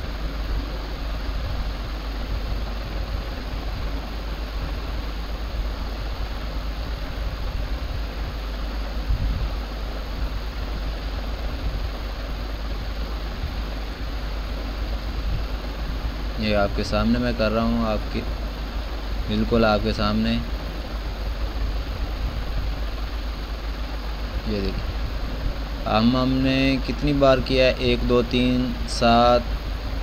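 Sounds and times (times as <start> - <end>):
even hiss: 0.0 - 30.0.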